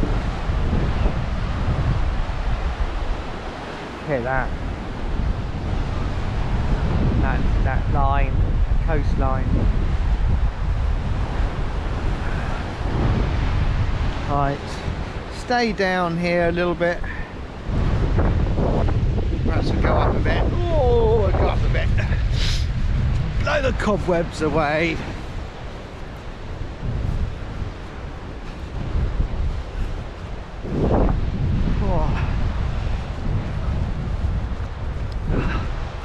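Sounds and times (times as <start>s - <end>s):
sea surf breaking on rocks: 0.0s - 36.0s
wind blowing over microphone: 0.0s - 36.0s.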